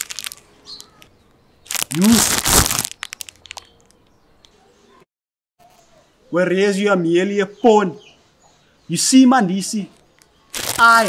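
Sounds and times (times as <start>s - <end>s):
crinkling crackles: 0.0s - 4.1s, 10.0s - 11.0s
man talking: 8.9s - 10.0s.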